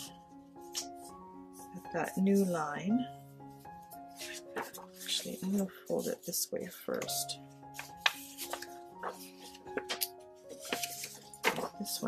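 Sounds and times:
paper crackling and rustling: 0.0s - 2.5s, 4.0s - 12.0s
soft background music: 0.0s - 12.0s.

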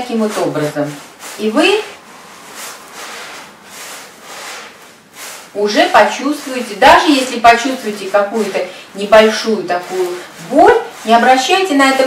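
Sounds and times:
palms rubbing on trouser fabric: 0.0s - 12.0s.

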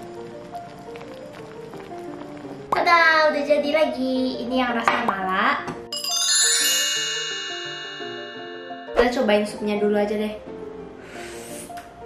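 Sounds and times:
background music with melody: 0.0s - 12.0s
bright ringing chime: 5.9s - 9.5s.

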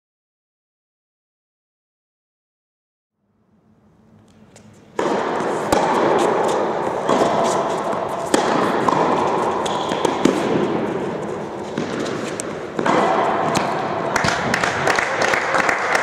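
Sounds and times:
steady background noise: 3.3s - 16.0s
tennis balls struck by rackets: 4.3s - 16.0s
tennis balls bouncing on court: 4.5s - 16.0s.

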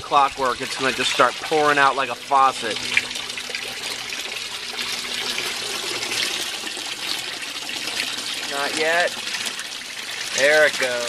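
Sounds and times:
water pouring into tank: 0.0s - 11.0s.

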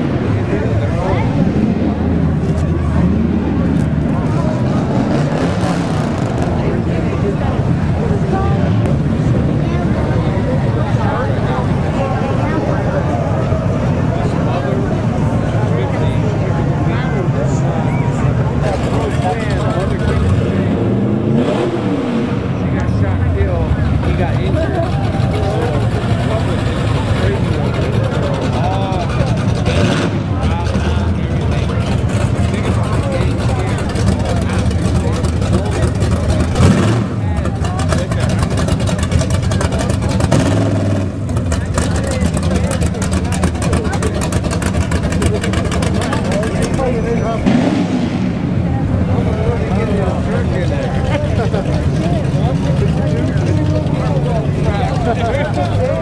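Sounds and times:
car engine revving: 0.0s - 56.0s
cars driving past rumbling: 0.0s - 56.0s.

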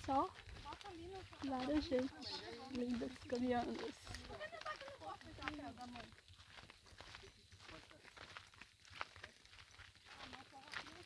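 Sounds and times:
footsteps on stony dirt path: 0.0s - 11.0s.

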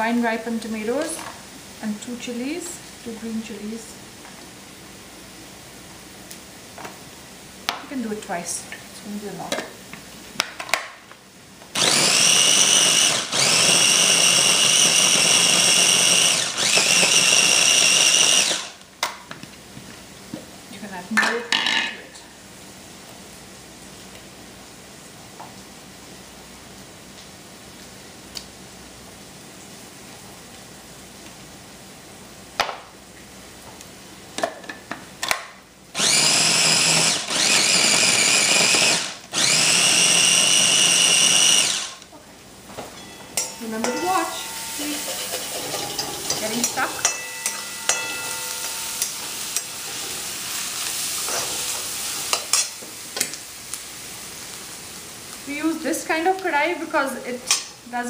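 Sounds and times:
food processor whining and grinding: 11.7s - 18.8s, 36.0s - 42.1s.

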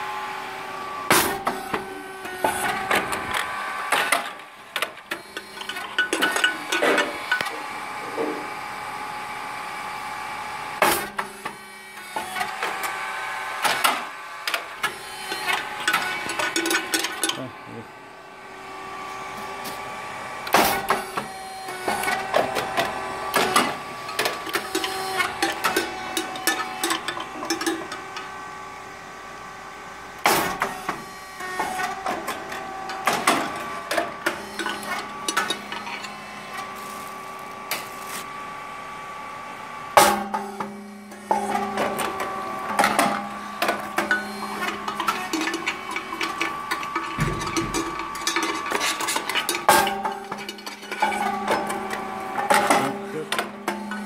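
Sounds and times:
mechanical clatter: 40.0s - 54.0s
rice cake machine popping: 40.0s - 54.0s.

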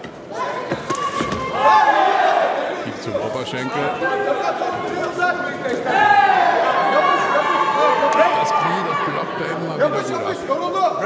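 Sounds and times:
people shouting: 0.3s - 2.8s, 3.9s - 9.2s.

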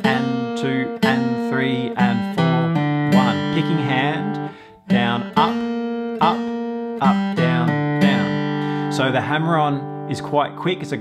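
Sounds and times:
acoustic guitar picked notes: 0.0s - 11.0s.

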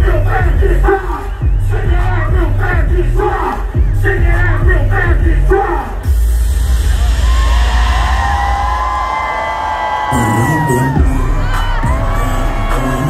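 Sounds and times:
crowd cheering and shouting: 0.0s - 13.0s
live hip-hop music with heavy bass: 0.0s - 13.0s.

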